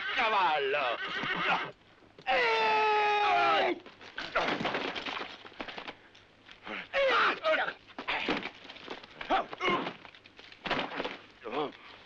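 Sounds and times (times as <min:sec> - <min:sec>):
horse whinnying: 0:00.0 - 0:01.8.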